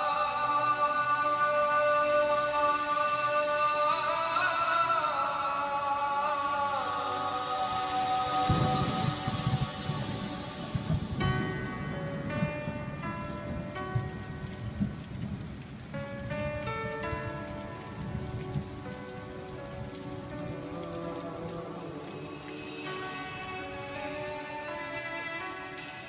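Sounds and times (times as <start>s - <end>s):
rain: 0.0s - 26.0s
low thunder rumbling: 8.3s - 26.0s
soft keyboard chords: 8.5s - 26.0s.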